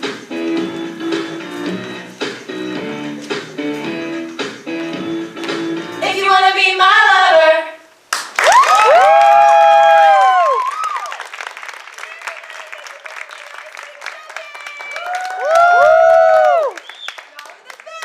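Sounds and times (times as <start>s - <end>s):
audience clapping: 8.1s - 18.0s
audience whooping: 8.4s - 11.4s, 14.0s - 18.0s.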